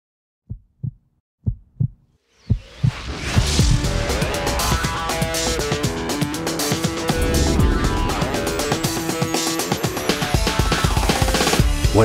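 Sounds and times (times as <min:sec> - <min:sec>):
heartbeat: 0:00.5 - 0:03.9.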